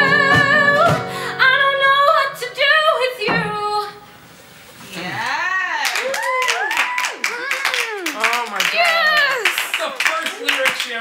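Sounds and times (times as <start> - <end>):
people clapping: 5.2 - 11.0.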